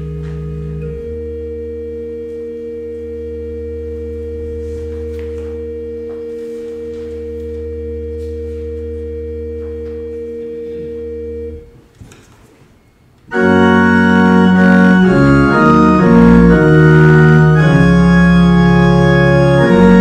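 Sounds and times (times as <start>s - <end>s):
church organ chord: 0.0s - 11.8s, 13.3s - 20.0s.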